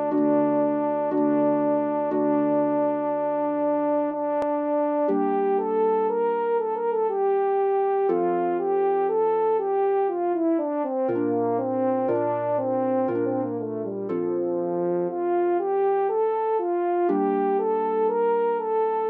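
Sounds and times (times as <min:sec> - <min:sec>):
harp: 0:00.0 - 0:03.6, 0:11.1 - 0:14.8
french horn: 0:00.0 - 0:19.0.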